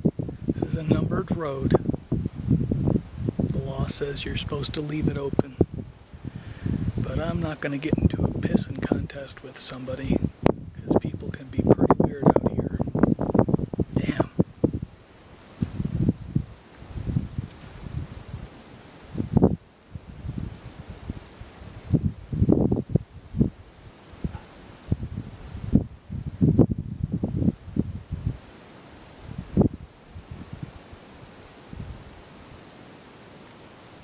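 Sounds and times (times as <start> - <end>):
wind buffeting microphone: 0.0 - 32.3.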